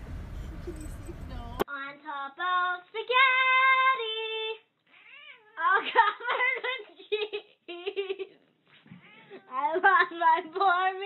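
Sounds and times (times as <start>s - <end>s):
cat yowling: 4.9s - 5.7s, 9.0s - 9.5s.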